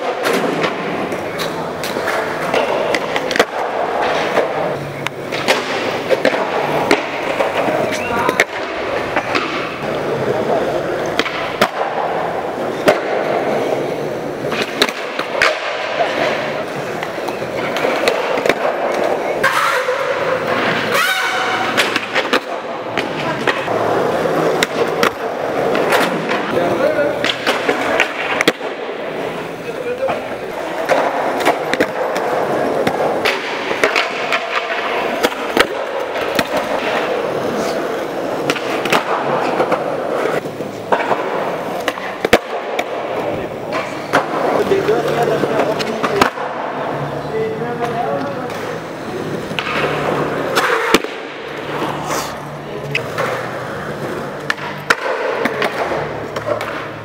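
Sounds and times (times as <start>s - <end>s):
skateboard tails clacking: 0.0s - 57.0s
skateboard wheels rolling on concrete: 0.0s - 57.0s.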